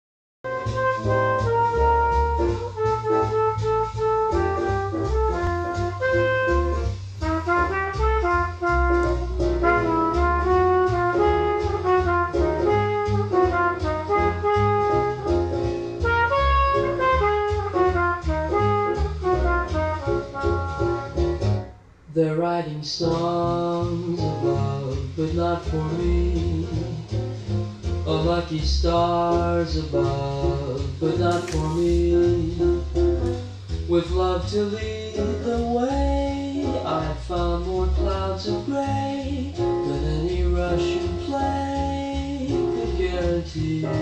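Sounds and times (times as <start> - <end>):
jazz music from vinyl record: 0.4 - 44.0.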